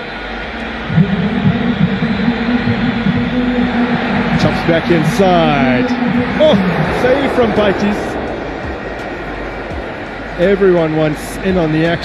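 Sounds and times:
low horn drone: 0.0 - 12.0
stadium crowd noise: 0.0 - 12.0
vuvuzelas: 0.0 - 12.0.

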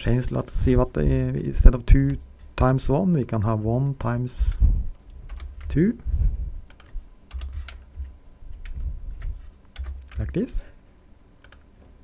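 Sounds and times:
computer keyboard typing: 5.3 - 5.8, 6.7 - 8.0, 8.6 - 10.4, 11.4 - 11.7.

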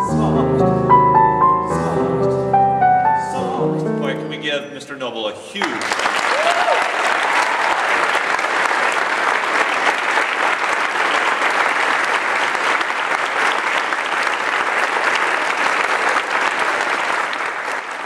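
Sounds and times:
crowd applauding: 5.6 - 18.0.

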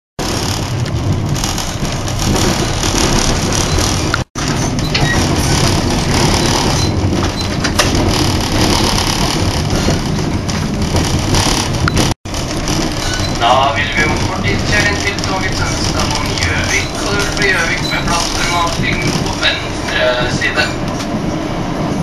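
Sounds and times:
train rumble inside carriage: 0.2 - 22.0.

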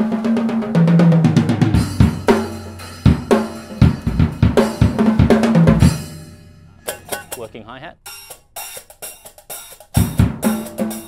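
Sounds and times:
heavy drum hit: 0.0 - 7.5, 10.0 - 11.0
hi-hat strikes: 1.5 - 11.0.

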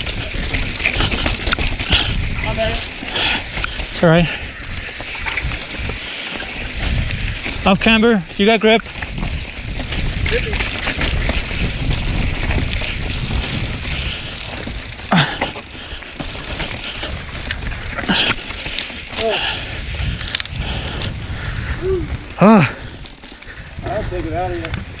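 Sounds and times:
wind on microphone: 0.0 - 15.0, 19.2 - 25.0
mountain bike rattling over rocks: 0.0 - 25.0.

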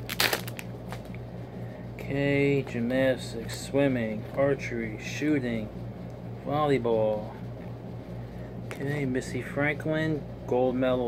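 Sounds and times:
foil wrapper crinkling: 0.0 - 1.1
wrapper rustling: 0.0 - 1.1.

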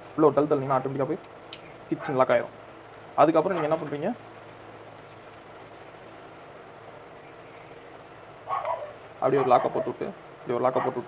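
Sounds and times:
low steady background noise: 0.0 - 11.0
dog barking: 2.0 - 2.2, 3.5 - 3.8, 8.5 - 10.0, 10.7 - 11.0.

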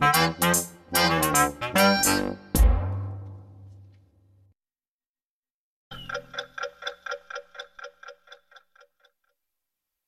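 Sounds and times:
clock-like ticking: 5.9 - 9.4.

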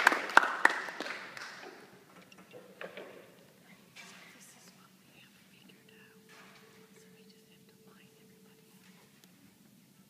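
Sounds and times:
faint steady tone: 2.2 - 10.0
faint whispering: 3.5 - 10.0.

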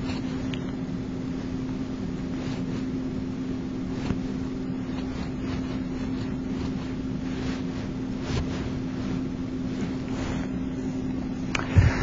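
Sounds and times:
constant hum: 0.0 - 12.0.

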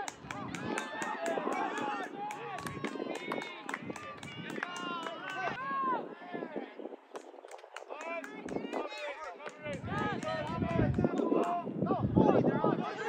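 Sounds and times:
people shouting and calling: 0.0 - 6.6, 7.8 - 13.0.

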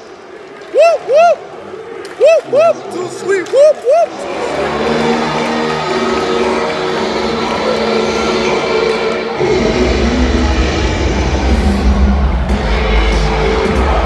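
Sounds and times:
loud music over pa system: 4.3 - 14.0
heavy bass line: 9.4 - 14.0.

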